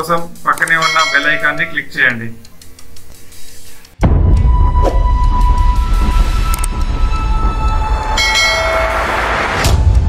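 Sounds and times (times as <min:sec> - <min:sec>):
bell-like chime: 0:00.8 - 0:01.8, 0:08.2 - 0:09.3.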